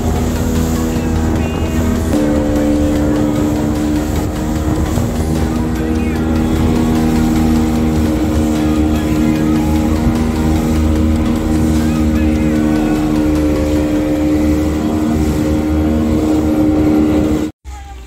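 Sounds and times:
boat motor running: 0.0 - 17.5
water rushing along hull: 0.0 - 17.5.

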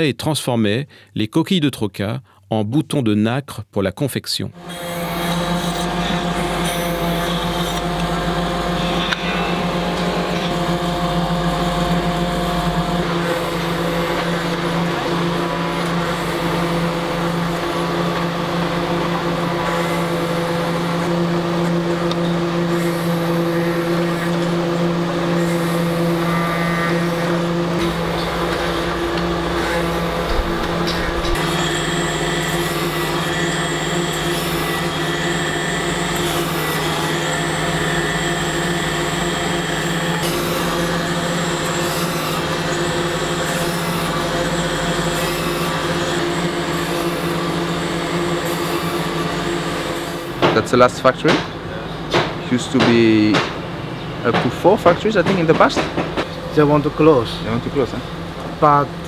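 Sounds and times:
machinery grinding shell: 4.6 - 51.6
steady motor hum: 4.6 - 59.0.

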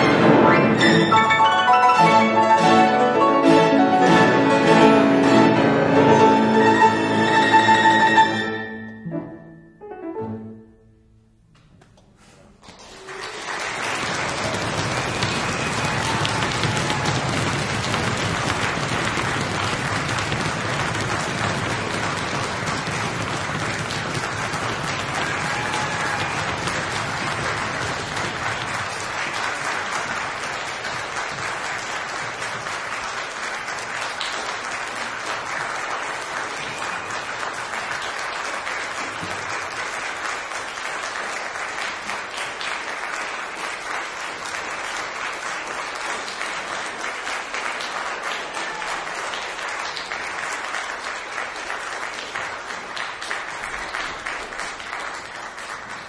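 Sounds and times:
audience applauding: 12.5 - 56.0.

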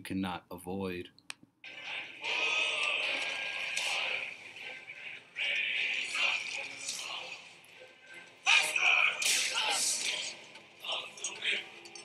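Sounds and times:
chorus singing a slow work chant: 1.7 - 11.8.

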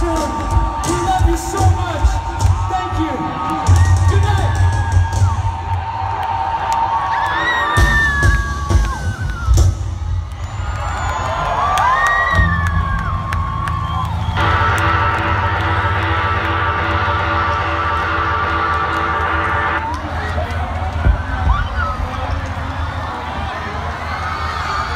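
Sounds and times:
live band playing: 0.0 - 5.6, 7.6 - 10.2, 12.4 - 19.9
crowd cheering and whooping: 0.0 - 24.9
steady bass line: 12.4 - 19.9.

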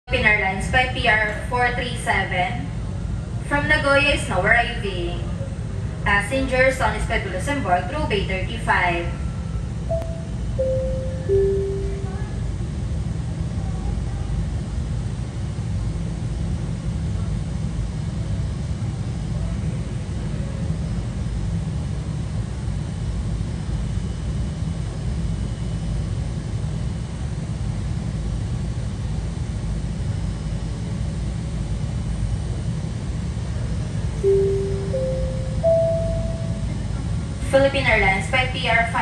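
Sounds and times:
airport ambience rumble: 0.1 - 23.9, 26.1 - 39.0
rising public address chime: 9.1 - 12.6, 34.2 - 38.1.

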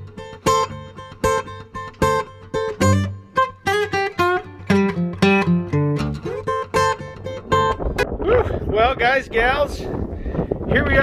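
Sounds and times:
acoustic guitar plucking: 0.0 - 8.6.

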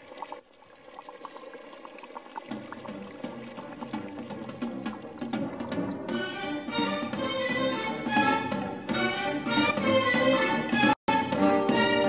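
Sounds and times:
liquid boiling in a pot: 0.0 - 6.2.

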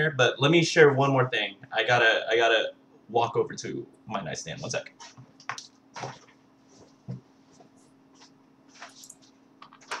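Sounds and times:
faint knocks and rustles: 4.6 - 10.0.

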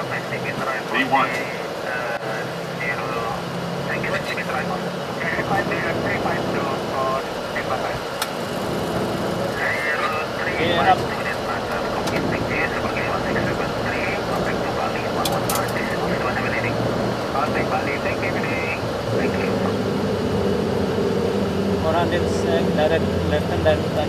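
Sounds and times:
muffled thin voices: 0.0 - 20.6
engine and airflow rush: 0.0 - 24.0
low steady hum: 0.4 - 1.8.

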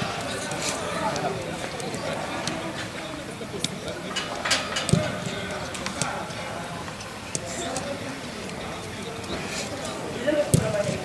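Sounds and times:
players talking: 0.0 - 11.0
footballs being kicked: 10.5 - 11.0.

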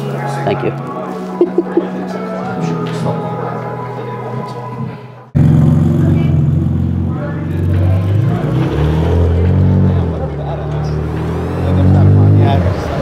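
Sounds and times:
background music: 0.0 - 5.4
car engine running: 5.4 - 13.0.

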